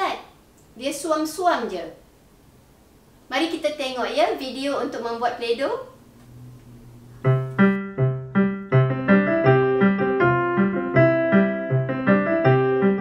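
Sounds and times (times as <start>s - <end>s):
piano music: 6.0s - 13.0s.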